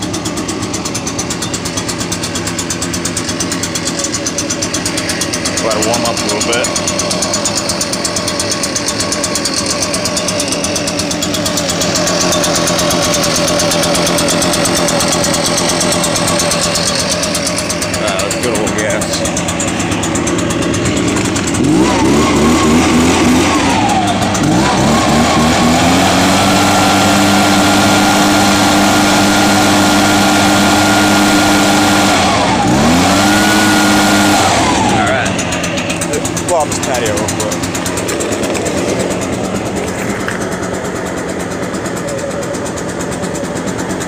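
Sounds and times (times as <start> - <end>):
leaf blower engine revving: 0.0 - 44.0.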